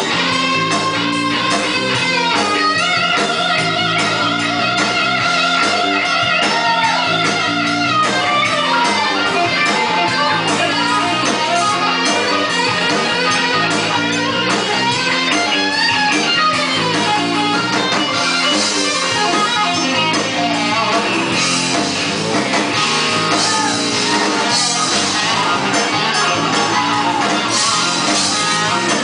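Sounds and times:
band rhythm accompaniment: 0.0s - 29.0s
electric guitar lead: 0.0s - 29.0s.

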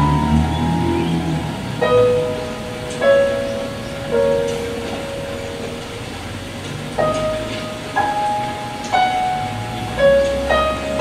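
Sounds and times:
slow piano notes ringing: 0.0s - 11.0s.

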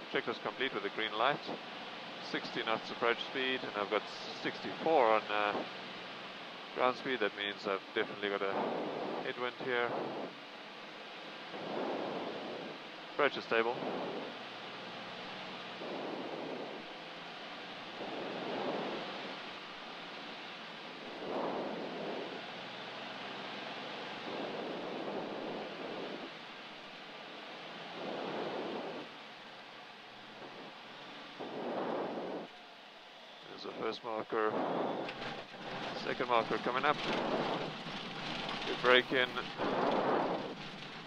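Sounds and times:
aircraft engine and airflow in cabin: 0.0s - 5.7s, 6.7s - 10.5s, 11.4s - 27.2s, 27.8s - 29.2s, 33.5s - 41.0s.

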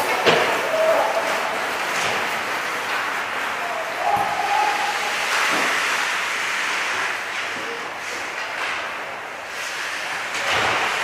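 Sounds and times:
hockey sticks and pucks knocking: 0.0s - 4.6s
player shouting: 3.6s - 5.2s.

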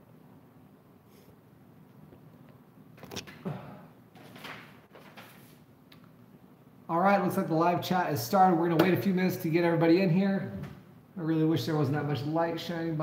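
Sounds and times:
person shuffling in a chair: 4.2s - 5.7s.

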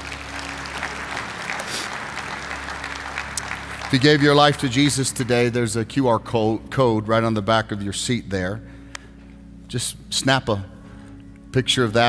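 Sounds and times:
congregation applauding: 0.0s - 6.1s.

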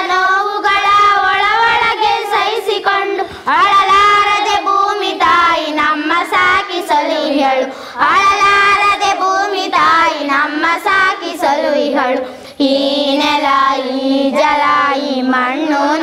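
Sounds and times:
group of boys singing: 0.0s - 16.0s.

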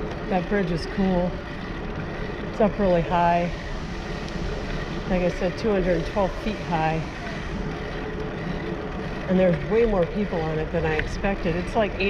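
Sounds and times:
bicycle road noise: 0.0s - 12.0s.

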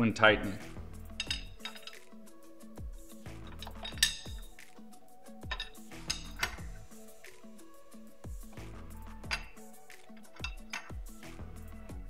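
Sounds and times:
background music: 0.0s - 12.0s
wrench clinking against metal fitting: 1.1s - 2.2s, 3.0s - 4.6s, 5.4s - 6.7s, 9.1s - 11.2s.

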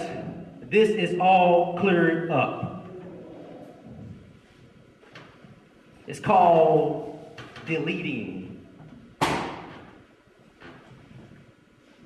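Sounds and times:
sharp knock: 9.2s - 9.8s.

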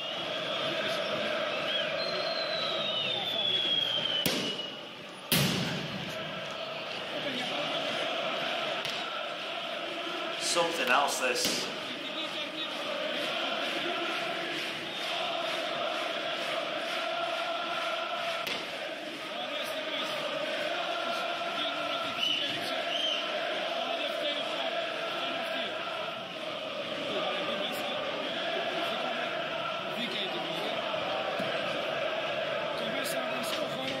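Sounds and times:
stadium crowd chanting: 0.0s - 34.0s.

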